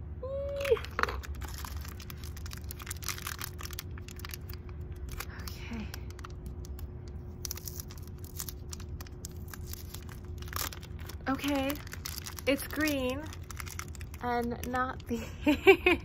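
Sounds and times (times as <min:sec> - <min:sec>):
packaging crinkling and tearing: 0:00.5 - 0:15.2.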